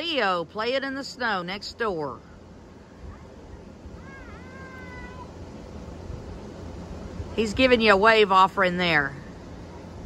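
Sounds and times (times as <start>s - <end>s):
child calling hi: 3.0s - 5.4s.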